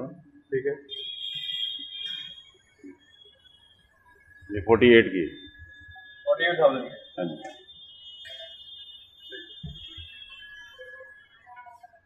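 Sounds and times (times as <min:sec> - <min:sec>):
faint high-pitched electronic tone: 0:00.0 - 0:12.0.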